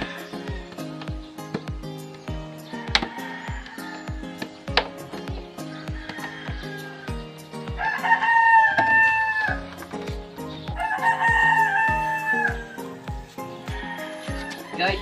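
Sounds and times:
music with a steady beat: 0.0 - 15.0
rooster crowing: 2.6 - 4.3, 5.6 - 9.7, 10.8 - 15.0.

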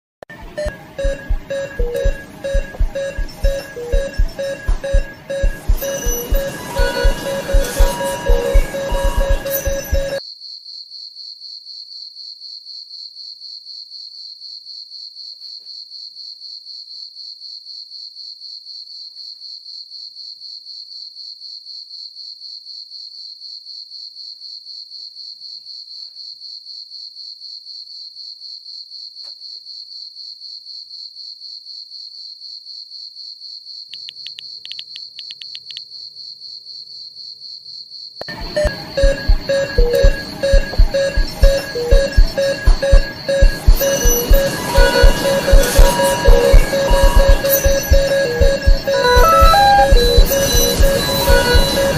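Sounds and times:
music: 0.3 - 10.2, 38.2 - 51.9
crickets chirping: 33.4 - 49.2.

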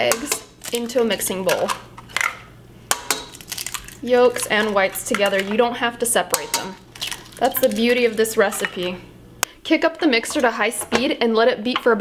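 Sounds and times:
eggs cracked on steel bowl: 0.0 - 5.6, 6.3 - 8.9.

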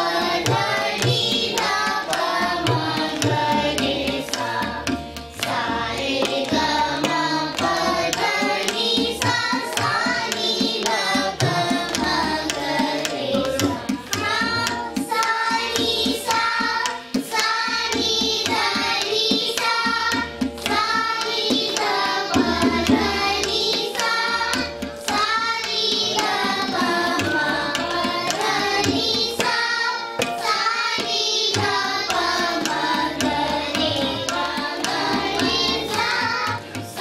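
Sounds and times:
children singing together: 0.0 - 37.0
tabla played by hand: 0.0 - 37.0.

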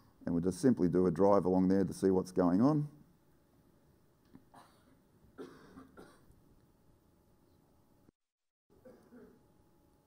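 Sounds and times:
faint cough: 4.5 - 6.4, 8.7 - 9.4.

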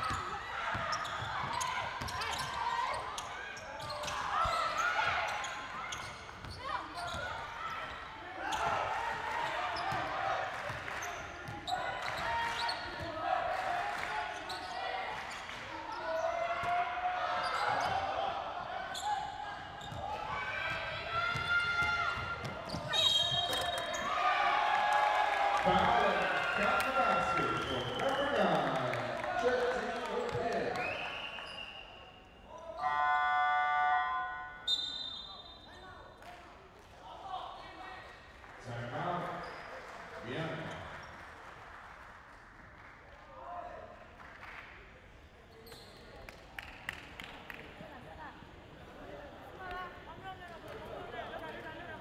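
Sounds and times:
players' voices echoing: 25.0 - 31.2
arena horn: 32.8 - 34.6.

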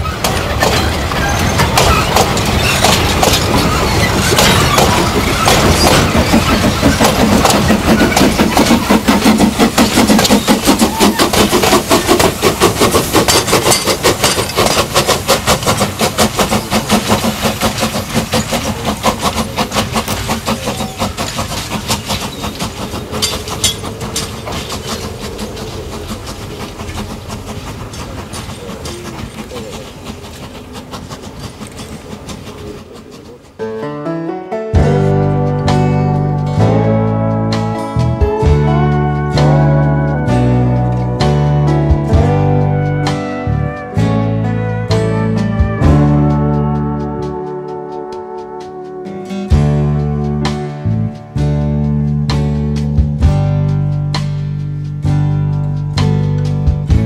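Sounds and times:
train wheels clattering over rail joints: 0.0 - 33.6.

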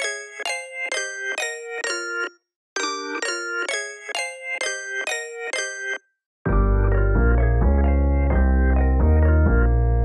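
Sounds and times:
keyboard chords: 6.5 - 10.0.

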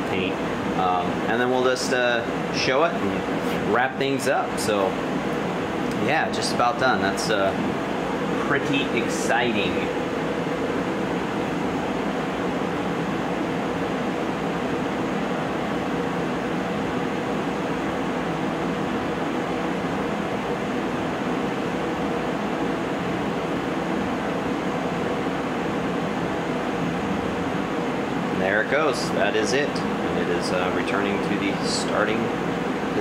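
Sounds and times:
extraction fan running: 0.0 - 33.0
laser engraver whirring: 0.0 - 33.0.

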